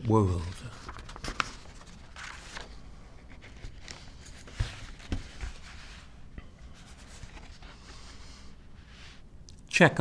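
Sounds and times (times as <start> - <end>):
paper rustling: 0.0 - 8.4.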